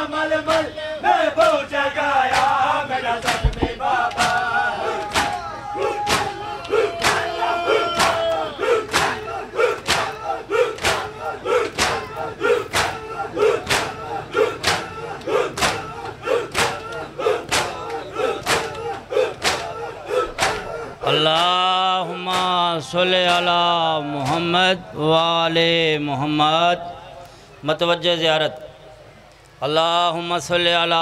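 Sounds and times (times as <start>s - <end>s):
crowd shouting a chant: 0.0s - 27.2s
hands striking chests: 3.3s - 4.4s.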